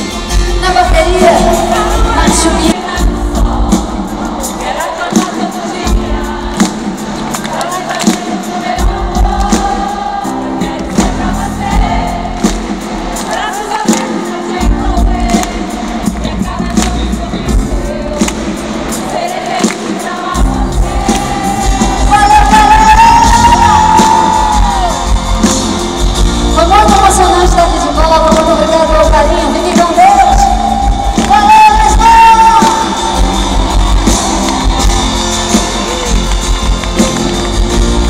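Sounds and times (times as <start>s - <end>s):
live band music: 0.0s - 38.0s
person singing: 13.2s - 25.3s.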